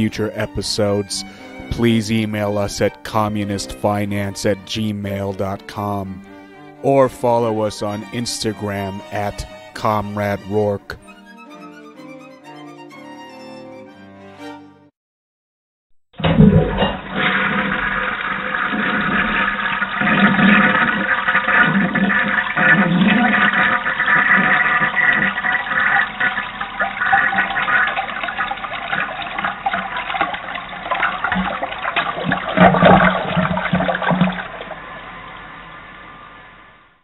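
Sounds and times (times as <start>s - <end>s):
toilet flushing: 0.0s - 10.5s, 16.2s - 35.8s.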